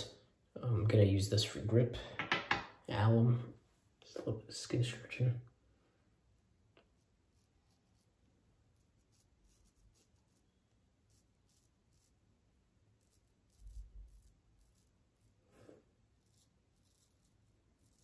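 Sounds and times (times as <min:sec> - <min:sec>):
razor cutting beard stubble: 0:06.9 - 0:12.2, 0:12.9 - 0:15.4, 0:16.1 - 0:18.0.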